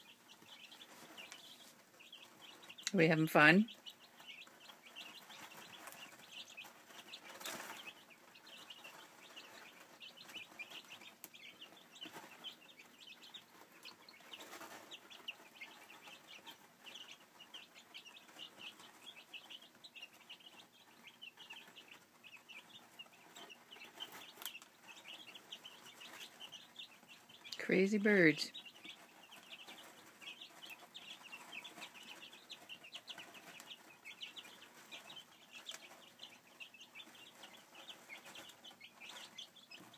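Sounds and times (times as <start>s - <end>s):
chicks peeping: 0.0s - 39.9s
chicks rustling in litter: 0.0s - 39.9s.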